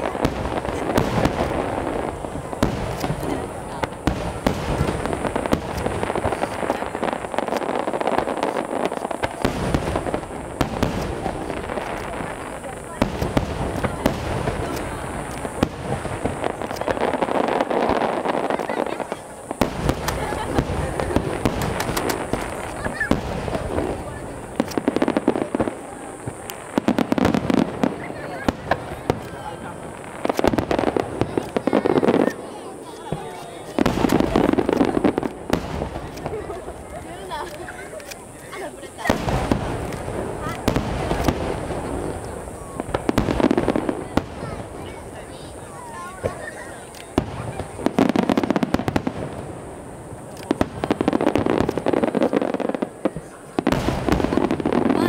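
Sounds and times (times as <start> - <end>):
firework shells bursting: 0.0 - 55.0.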